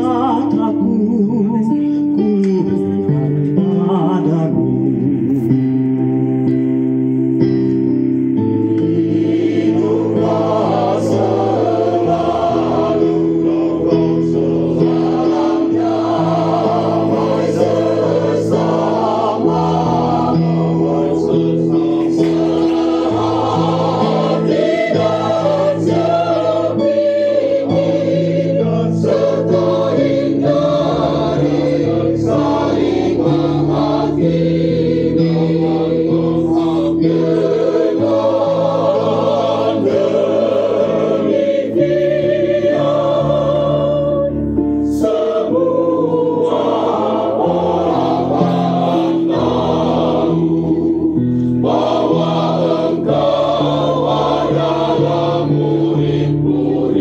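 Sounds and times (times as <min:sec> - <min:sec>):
mixed choir singing a hymn: 0:00.0 - 0:01.8, 0:08.3 - 0:57.0
electronic keyboard: 0:00.0 - 0:57.0.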